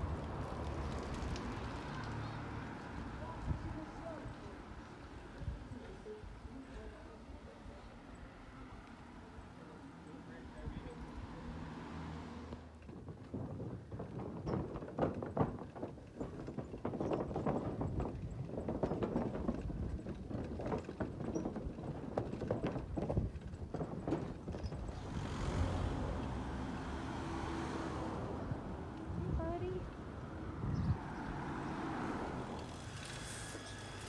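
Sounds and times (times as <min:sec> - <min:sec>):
bicycle wheels clattering on wooden bridge: 0:00.0 - 0:05.2, 0:12.6 - 0:29.0.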